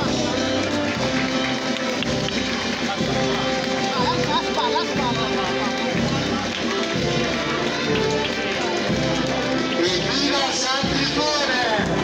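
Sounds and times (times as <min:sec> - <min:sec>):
band playing sustained chords: 0:00.0 - 0:12.0
crowd voices: 0:00.0 - 0:12.0.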